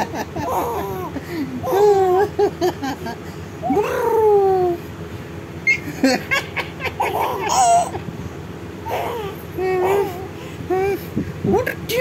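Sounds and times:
baby laughing: 0:00.0 - 0:04.8, 0:05.7 - 0:08.1, 0:08.8 - 0:11.0.

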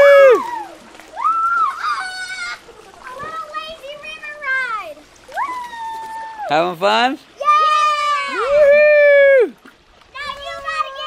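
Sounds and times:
child's high-pitched call: 0:10.2 - 0:11.0.

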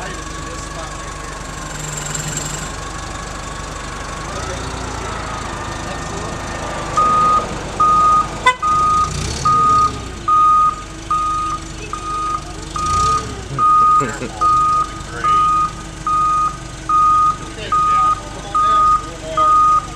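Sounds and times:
forklift engine running: 0:00.0 - 0:19.9
reversing alarm beeping: 0:00.0 - 0:19.9.

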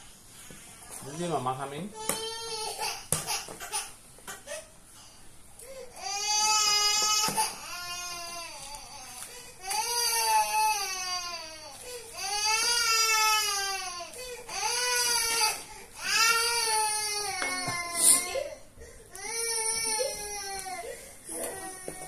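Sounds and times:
baby crying: 0:12.2 - 0:18.6, 0:19.2 - 0:22.0.

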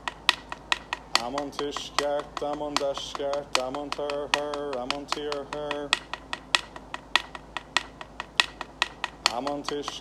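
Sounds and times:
hand percussion clacks: 0:00.0 - 0:10.0.

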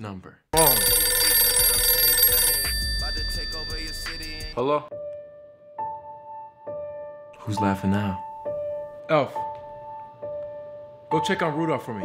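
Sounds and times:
phone ringtone: 0:00.6 - 0:04.6.

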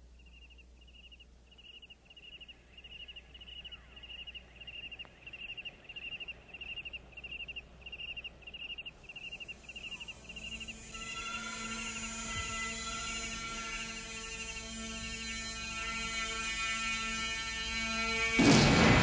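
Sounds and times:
cricket chirping: 0:00.0 - 0:18.0
low hum: 0:00.0 - 0:19.0
steady drone with overtones: 0:08.6 - 0:19.0.

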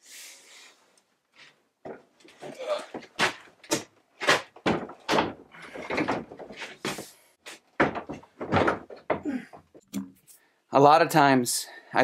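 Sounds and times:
wooden door knocks and thumps: 0:03.1 - 0:06.6, 0:07.8 - 0:10.1.

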